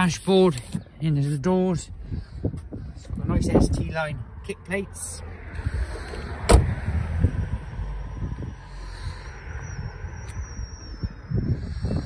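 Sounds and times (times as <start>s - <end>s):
low rumble: 1.8s - 12.0s
car door shutting with thud: 6.4s - 6.8s.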